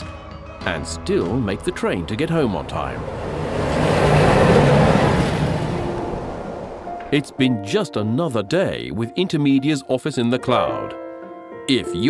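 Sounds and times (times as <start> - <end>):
train rumbling past: 1.6 - 7.5.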